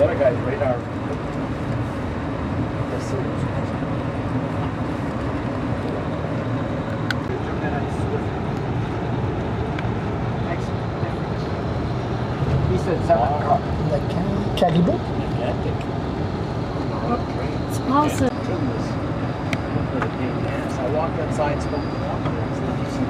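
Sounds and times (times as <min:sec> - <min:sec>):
train rumbling on rails: 0:00.0 - 0:23.0.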